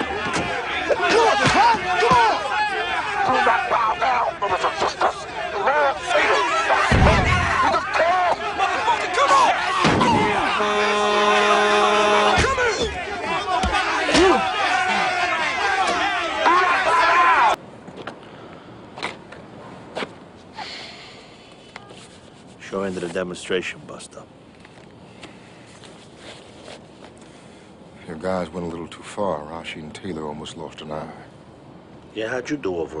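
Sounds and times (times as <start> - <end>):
men shouting and yelling: 0.0 - 17.6
thuds of blows: 6.8 - 8.4, 9.8 - 10.6, 12.2 - 14.5.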